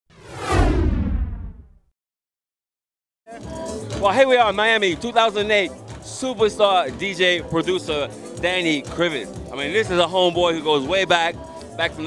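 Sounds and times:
whoosh with deep bass boom: 0.1s - 1.8s.

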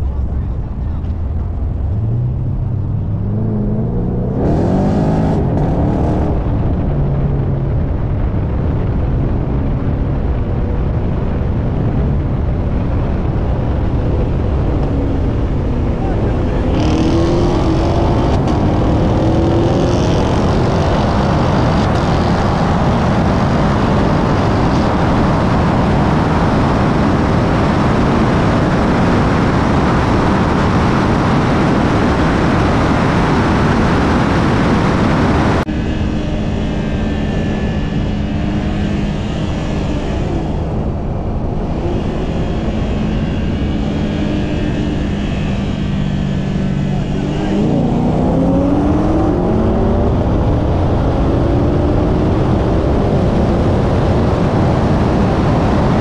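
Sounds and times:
car engine: 0.0s - 56.0s
heavy wind rush: 0.0s - 56.0s
engine revving at full throttle: 2.0s - 6.8s, 13.7s - 56.0s.

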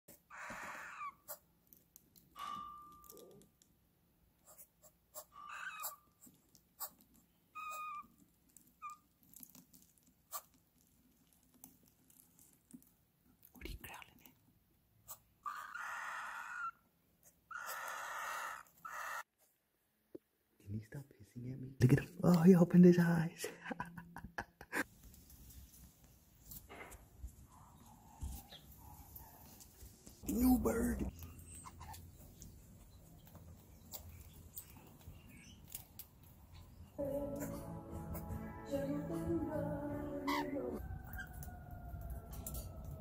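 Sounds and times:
chicks hissing: 17.6s - 19.3s.

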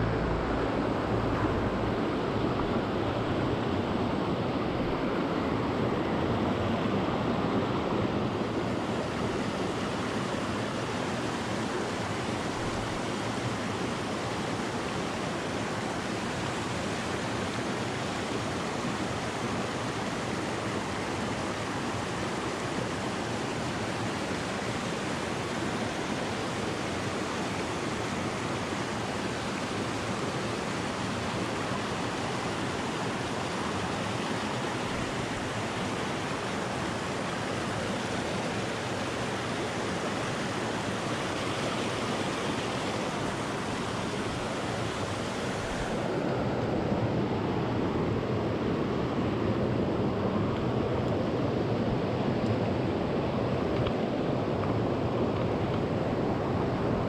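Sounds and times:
mountain stream over stones: 0.0s - 57.0s
small water cascade: 0.0s - 57.0s.

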